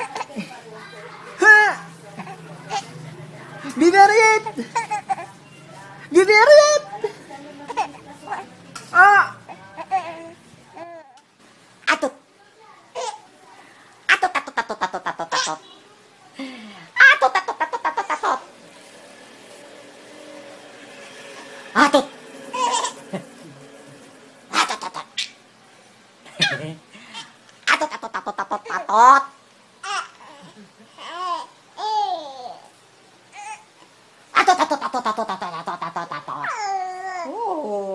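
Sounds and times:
baby laughing: 0.0 - 3.0, 4.0 - 5.4, 7.6 - 8.4, 9.0 - 11.2, 14.1 - 15.7, 17.0 - 18.5, 21.8 - 23.6, 24.5 - 25.4, 26.3 - 32.7, 34.3 - 37.3
baby squealing: 36.2 - 37.3.

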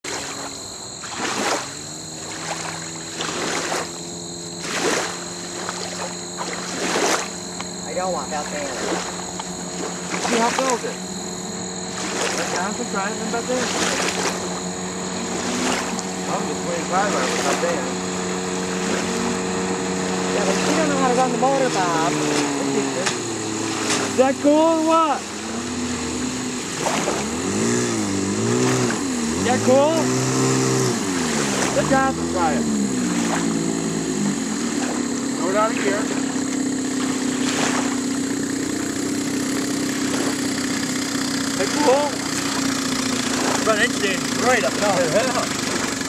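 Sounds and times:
distant outboard motor: 0.0 - 46.0
small waves splashing on shore: 0.0 - 46.0.

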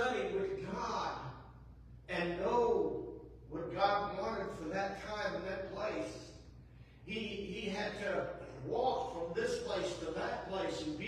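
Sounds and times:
man preaching: 0.0 - 6.4, 7.0 - 11.0.

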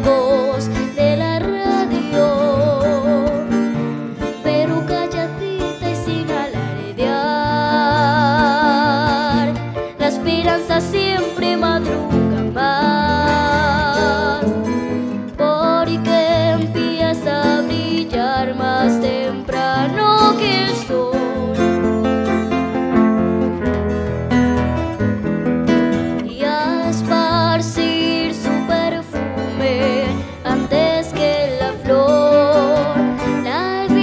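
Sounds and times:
girl singing with vibrato: 0.0 - 22.2, 26.2 - 34.0
acoustic guitars: 0.0 - 34.0
digital piano: 0.0 - 34.0.

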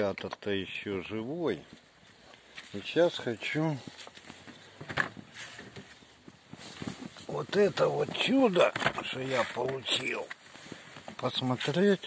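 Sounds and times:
light knocks and rustling: 3.4 - 11.8.

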